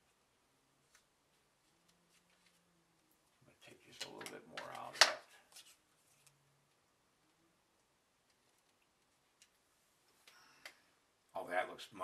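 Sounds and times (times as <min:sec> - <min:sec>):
soft paper rustle: 0:00.8 - 0:06.8, 0:08.2 - 0:10.6
man talking: 0:03.5 - 0:05.3, 0:11.3 - 0:12.0.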